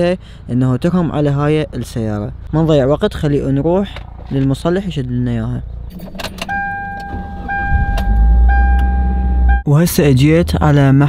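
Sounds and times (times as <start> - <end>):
car engine cranking and starting: 5.8 - 9.6
key and ignition clicks: 5.9 - 9.0
dashboard warning chime: 5.9 - 9.7.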